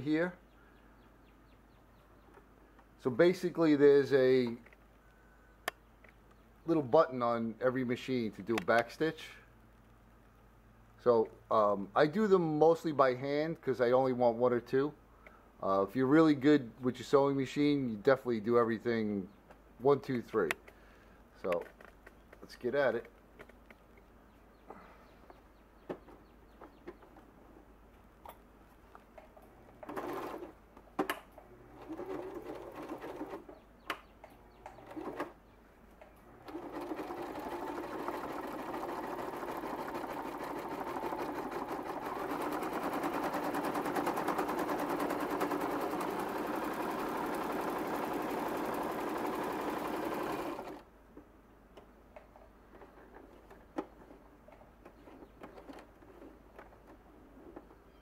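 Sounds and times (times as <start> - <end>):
sewing machine stitching: 29.7 - 30.6, 31.4 - 33.6, 34.6 - 35.4, 36.2 - 50.8.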